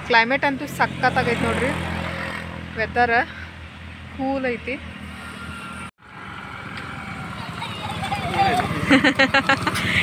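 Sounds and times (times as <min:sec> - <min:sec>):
scooter engine puttering: 0:05.4 - 0:10.0.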